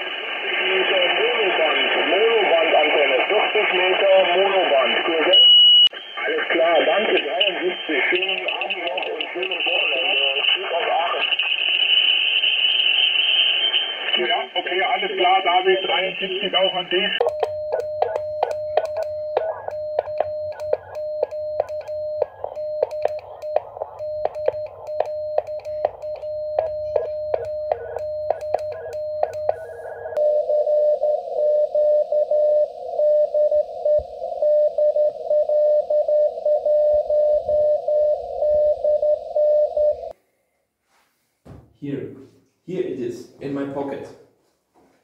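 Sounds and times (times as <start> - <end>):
morse code beeps: 17.2 - 40.1.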